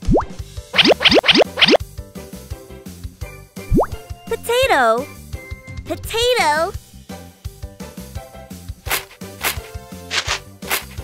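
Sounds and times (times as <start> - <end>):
cartoon rising sweeps: 0.8 - 1.8
children's song backing music: 2.3 - 8.8.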